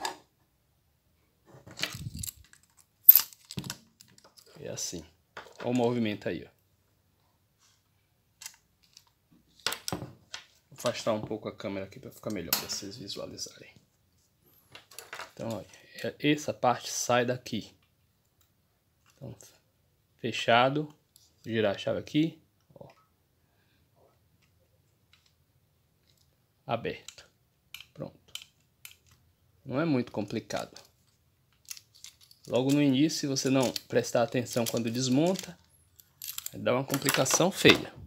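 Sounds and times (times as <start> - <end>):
person speaking: 4.4 - 6.6, 10.7 - 13.8, 15.3 - 17.8, 32.4 - 35.6, 36.4 - 38.0
plastic parts clicking: 27.0 - 29.3, 30.5 - 37.8.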